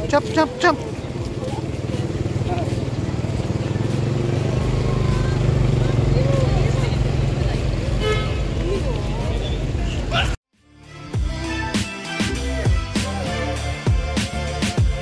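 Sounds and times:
vehicle engine droning: 0.0 - 10.4.

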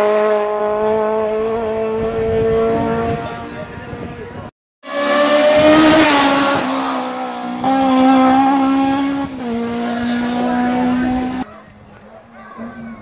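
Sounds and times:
rally car passing at full throttle: 0.0 - 11.5.

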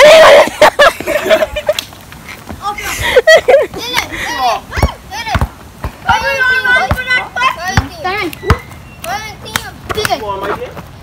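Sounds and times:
children shouting and laughing: 0.0 - 1.9, 2.5 - 10.7
ball thudding on hard court: 4.8 - 7.1.

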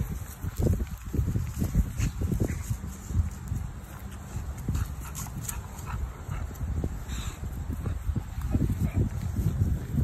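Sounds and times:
wind on microphone: 0.0 - 10.0
dog breathy noises: 4.1 - 10.0.

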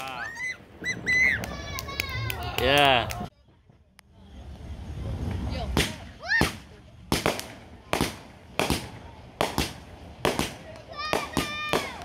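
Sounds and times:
fireworks banging: 0.0 - 12.0.

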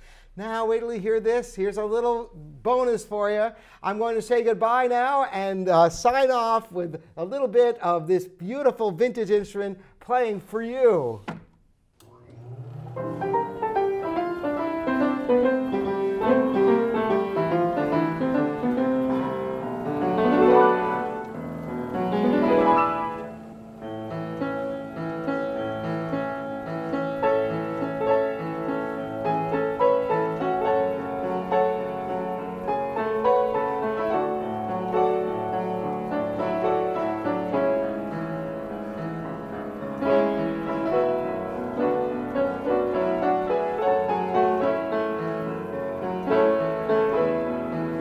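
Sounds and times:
player piano tune: 12.1 - 48.0.

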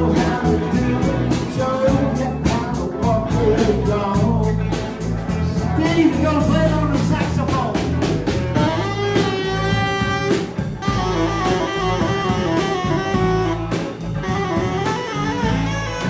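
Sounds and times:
drum kit: 0.0 - 16.0
steady bass line: 0.0 - 16.0
tenor saxophone melody: 8.6 - 16.0.

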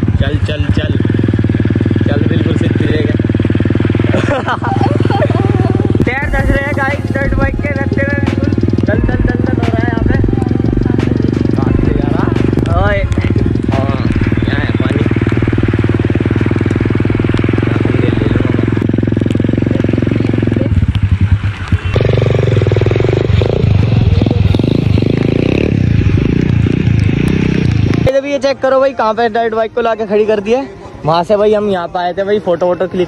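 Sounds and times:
dirt bike engine running: 0.0 - 33.0.

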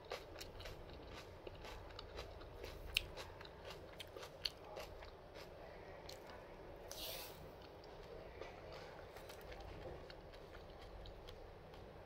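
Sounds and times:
biting and chewing fruit: 0.0 - 6.4, 7.6 - 12.0.

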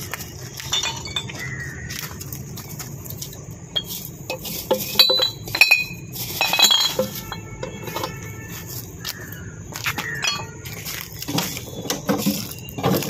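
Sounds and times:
glass bottles clinking: 0.5 - 1.7, 3.2 - 8.8, 10.0 - 13.0.

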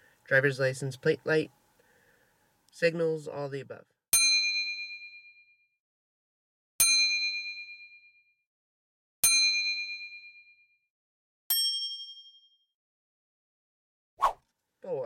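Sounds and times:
bell-like ding: 4.2 - 5.6, 6.8 - 8.3, 9.2 - 10.8, 11.5 - 12.7.

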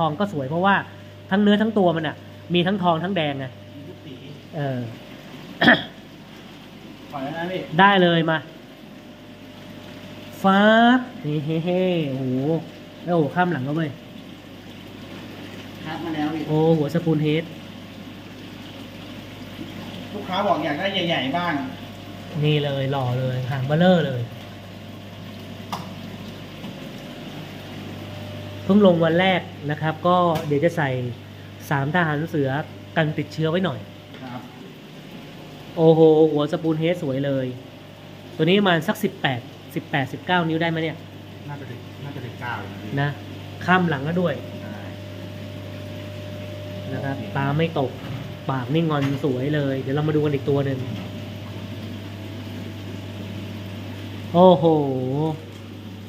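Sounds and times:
aquarium pumps humming: 0.0 - 56.0
watery filter hiss: 0.0 - 56.0.

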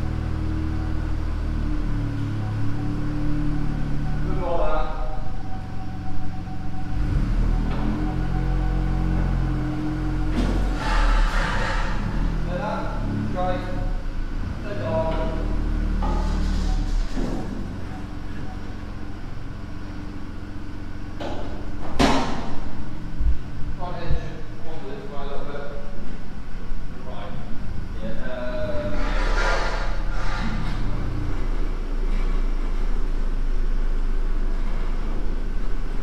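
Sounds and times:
indistinct voices: 0.0 - 20.2, 23.6 - 33.0
car engine running at low revs: 0.0 - 36.0.

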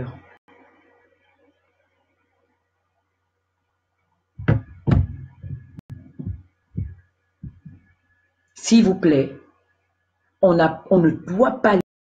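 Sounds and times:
dull thumps and knocks: 4.4 - 7.8.

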